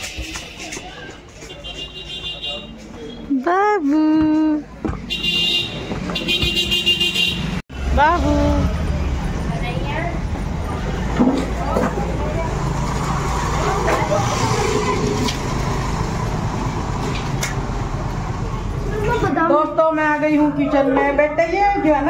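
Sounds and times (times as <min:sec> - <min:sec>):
low rumble of traffic: 0:00.0 - 0:22.0.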